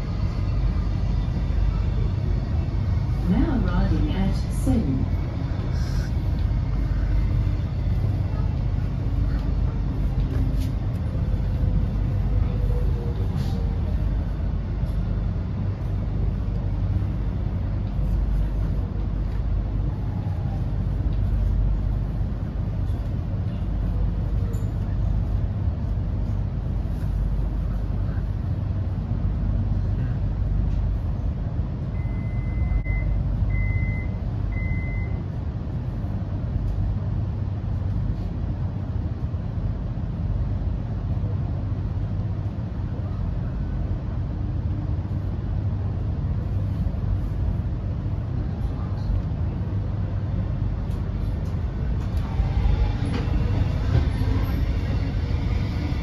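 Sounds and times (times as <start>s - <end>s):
train wheels rumbling: 0.0s - 32.2s, 35.2s - 56.0s.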